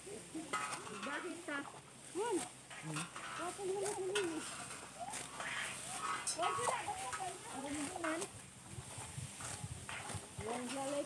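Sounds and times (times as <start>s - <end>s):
sickles cutting rice stalks: 0.0s - 11.0s
voices talking: 0.0s - 11.0s.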